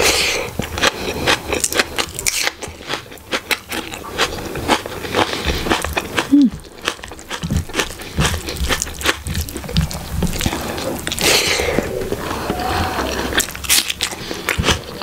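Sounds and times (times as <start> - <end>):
wet chewing and mouth clicks: 0.0 - 15.0.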